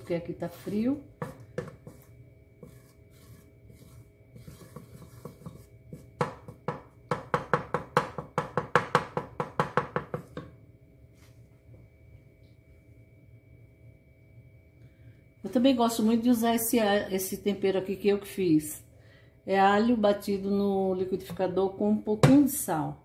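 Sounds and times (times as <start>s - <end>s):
wooden spoon scraping metal pot: 0.0s - 7.3s.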